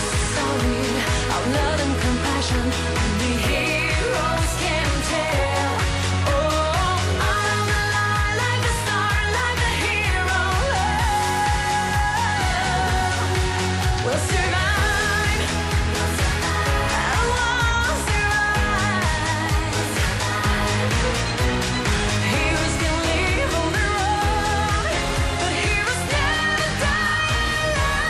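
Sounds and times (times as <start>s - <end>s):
upbeat backing track: 0.0s - 28.0s
woman singing into microphone: 0.0s - 28.0s.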